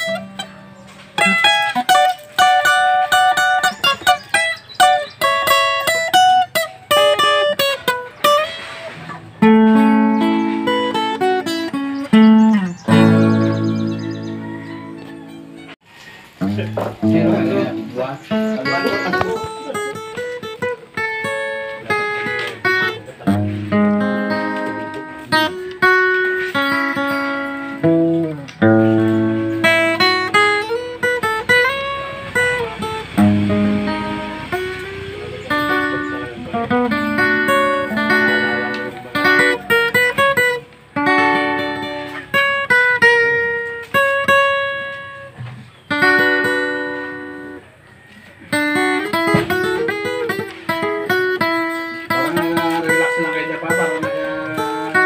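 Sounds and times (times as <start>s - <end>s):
acoustic guitar melody: 0.0s - 55.0s.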